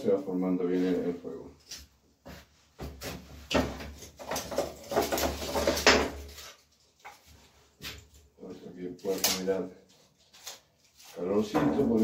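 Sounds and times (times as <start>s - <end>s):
firewood clattering and scraping: 3.0s - 8.0s.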